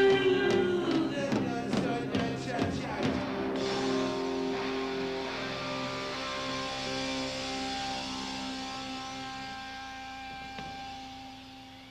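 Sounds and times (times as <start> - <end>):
electric guitar chord ringing: 3.2 - 11.9.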